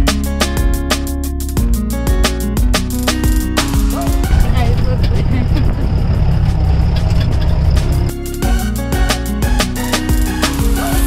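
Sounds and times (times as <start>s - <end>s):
background music: 0.0s - 5.5s, 7.6s - 11.0s
vehicle engine and road rumble: 4.2s - 8.1s
wind noise on microphone: 4.2s - 8.1s.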